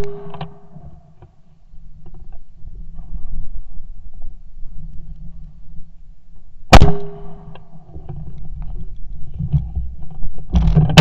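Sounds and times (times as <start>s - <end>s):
shotgun shot: 0.0s - 0.6s, 6.7s - 7.5s
low steady rumble: 0.0s - 11.0s.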